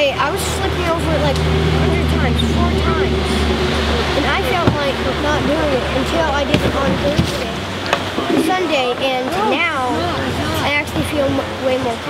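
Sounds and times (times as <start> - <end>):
child talking: 0.0 - 7.6, 8.2 - 12.0
low hum: 0.0 - 8.2
river water rushing: 0.0 - 12.0.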